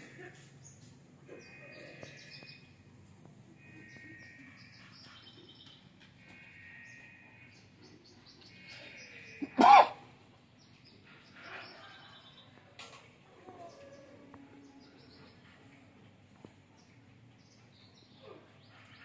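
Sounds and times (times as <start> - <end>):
loud animal call: 8.6 - 10.1.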